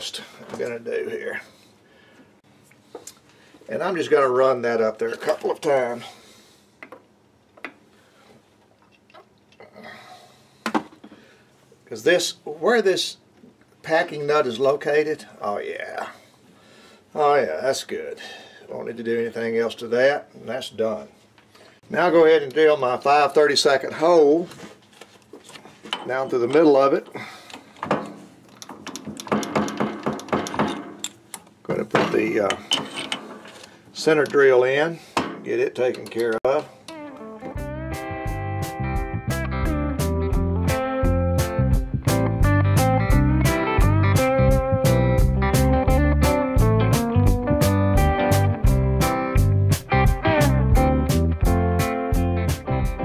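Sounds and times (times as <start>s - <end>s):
tools clicking: 27.5s - 31.5s
metal clicks and knocks: 27.8s - 34.5s, 35.2s - 37.0s.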